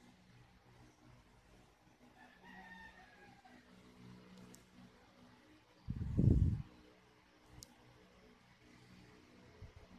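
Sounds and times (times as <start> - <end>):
steady low hum: 0.0 - 9.9.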